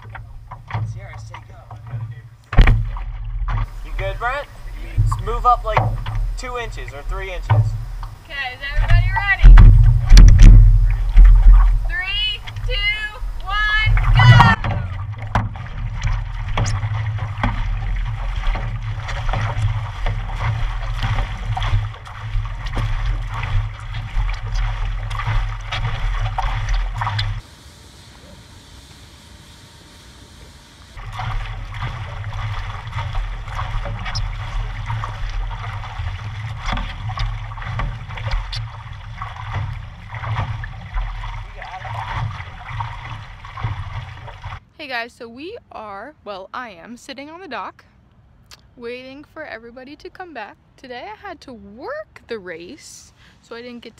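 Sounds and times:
water splashing against board: 0.0 - 28.4, 30.8 - 44.7
water lapping: 0.0 - 46.0
steady low rumble: 0.0 - 46.9.

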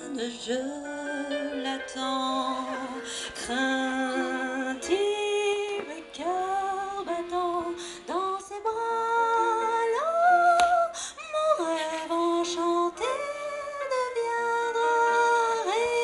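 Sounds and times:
person singing into a microphone: 0.0 - 16.0.

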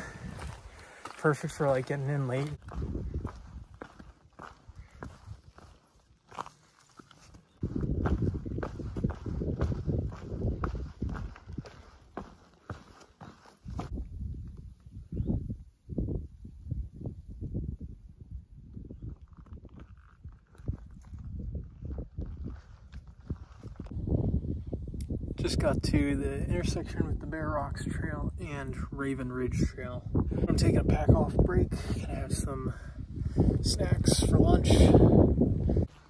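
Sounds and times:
footsteps on a trail: 0.0 - 14.9, 19.0 - 24.1, 35.1 - 36.0
low rumbling microphone noise: 7.6 - 12.0.

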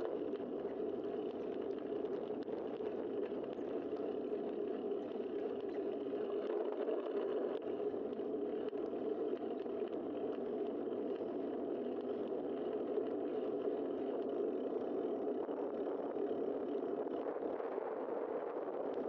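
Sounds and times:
faint clicks: 0.0 - 17.6
wind rushing over camera: 0.0 - 19.0.

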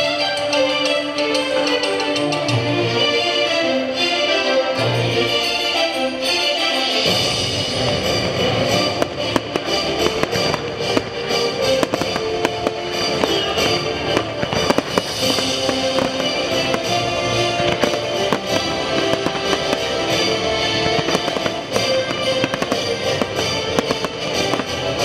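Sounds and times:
orchestral music from speakers: 0.0 - 25.0
fireworks bursting with sharp bangs: 7.0 - 25.0.

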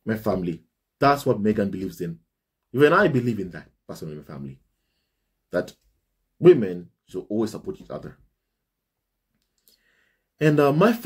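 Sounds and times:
man speaking: 0.0 - 4.6, 5.5 - 5.8, 6.4 - 8.3, 10.4 - 11.0.

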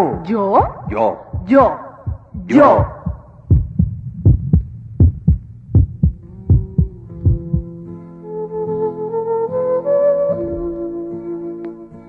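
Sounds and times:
heartbeat thumps: 0.0 - 7.7.

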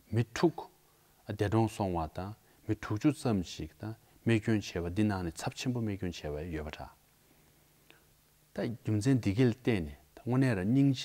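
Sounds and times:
man speaking: 0.1 - 7.0, 8.5 - 11.0.

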